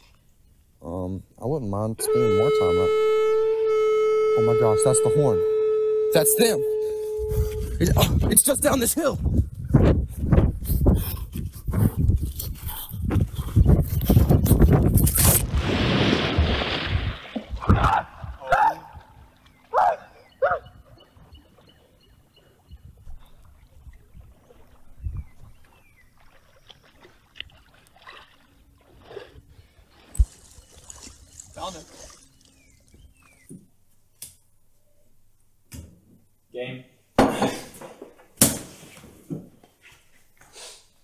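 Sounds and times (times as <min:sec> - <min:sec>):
short sharp pitched sounds: 0:02.0 - 0:07.9
footsteps crunching through dry leaves: 0:29.9 - 0:32.6.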